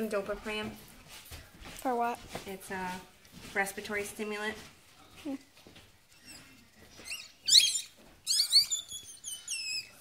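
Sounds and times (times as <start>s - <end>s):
puppy squeaky cries: 6.2s - 10.0s.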